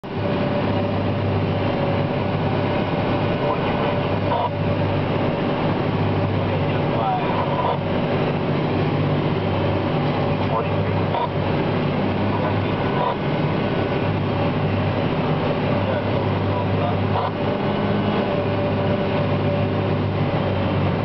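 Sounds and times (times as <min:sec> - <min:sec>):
tractor engine and harvester drone: 0:00.0 - 0:21.0.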